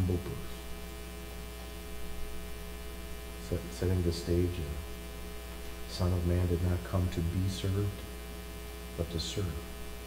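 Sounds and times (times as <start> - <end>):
man talking: 0.0 - 0.7, 3.4 - 5.0, 5.9 - 8.2, 9.0 - 9.7
electrical mains hum: 0.0 - 10.0.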